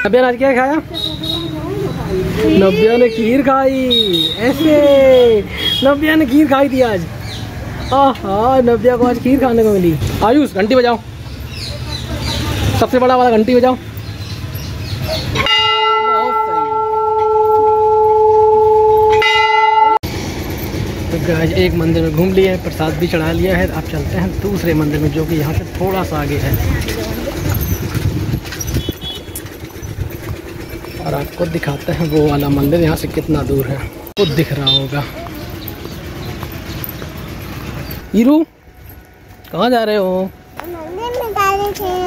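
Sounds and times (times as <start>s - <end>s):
large temple bell ringing: 15.4s - 20.0s.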